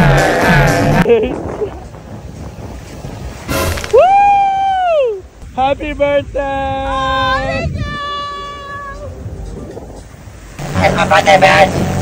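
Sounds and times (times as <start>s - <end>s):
surf: 0.0s - 12.0s
wind: 0.0s - 12.0s.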